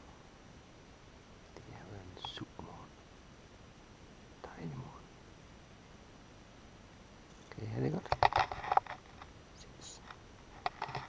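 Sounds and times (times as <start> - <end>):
faint outdoor background: 0.0 - 11.0
man whispering: 1.6 - 3.0, 4.4 - 5.1, 7.5 - 8.1, 9.5 - 10.1.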